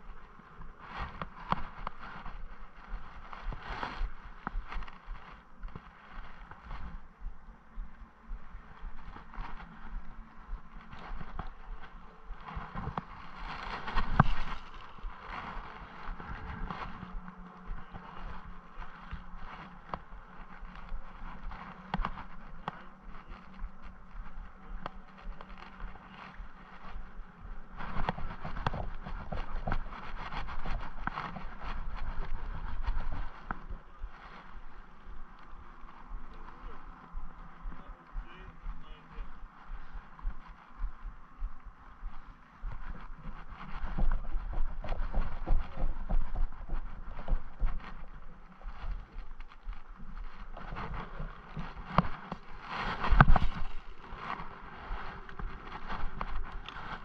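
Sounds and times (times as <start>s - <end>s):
steady outdoor hiss: 0.0s - 57.0s.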